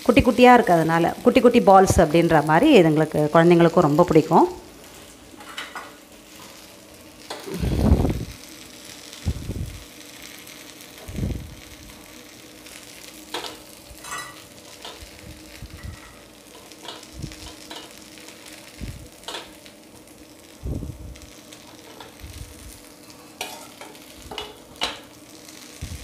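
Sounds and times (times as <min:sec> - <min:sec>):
batter balls sizzling in oil: 0:00.0 - 0:26.0.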